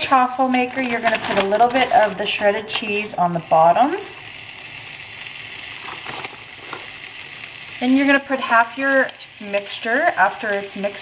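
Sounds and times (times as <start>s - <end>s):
faint crackles: 0.4s - 11.0s
cheese sizzling on hot plate: 2.7s - 11.0s.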